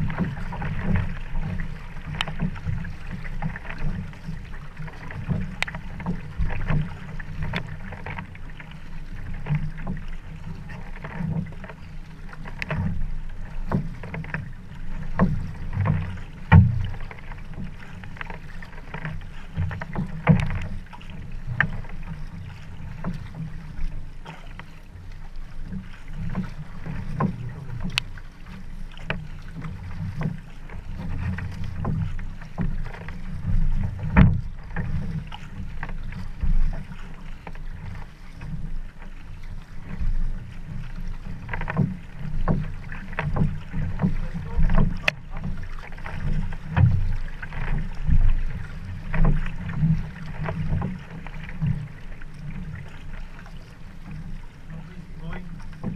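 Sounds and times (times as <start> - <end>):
paddle splashes and water slaps: 0.0 - 55.9.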